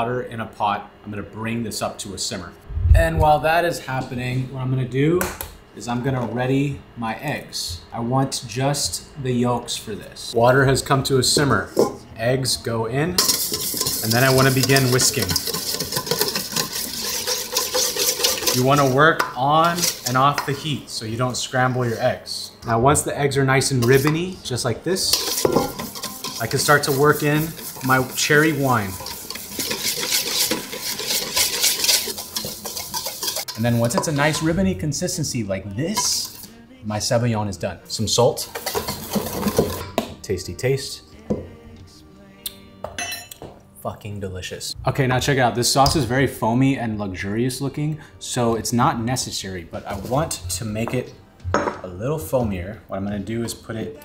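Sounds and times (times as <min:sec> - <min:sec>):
whisk beating in metal bowl: 0:13.2 - 0:20.7, 0:24.9 - 0:34.6, 0:36.0 - 0:36.5, 0:38.0 - 0:39.9.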